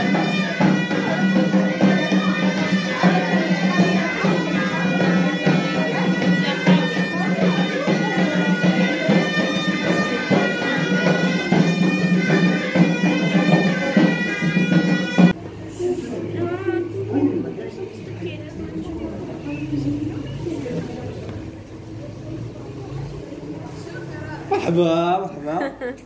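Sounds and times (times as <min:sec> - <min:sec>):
frame drums: 0:00.0 - 0:15.4
reedy shawm melody: 0:00.0 - 0:22.0.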